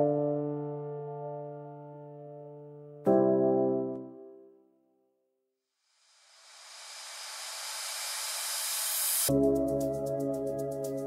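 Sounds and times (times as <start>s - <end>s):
white-noise riser: 5.9s - 9.3s.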